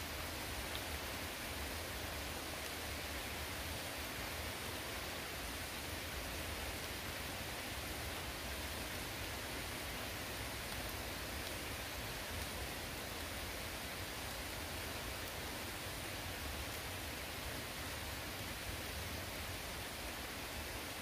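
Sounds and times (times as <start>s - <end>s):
light rain on foliage: 0.0s - 21.0s.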